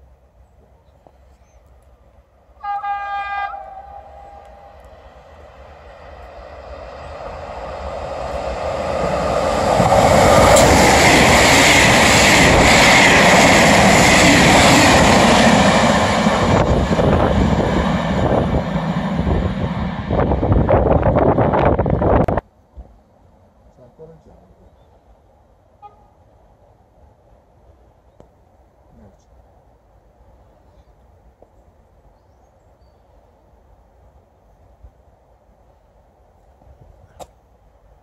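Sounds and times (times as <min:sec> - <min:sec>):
train horn blast: 0:02.6 - 0:04.9, 0:25.8 - 0:26.3
train wheels rushing on rails: 0:03.5 - 0:23.0
rapid rail clacking: 0:08.4 - 0:17.3.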